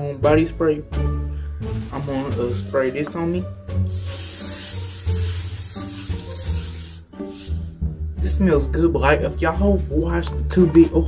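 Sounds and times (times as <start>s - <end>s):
background music: 0.0s - 11.0s
body spray hissing: 2.5s - 7.8s.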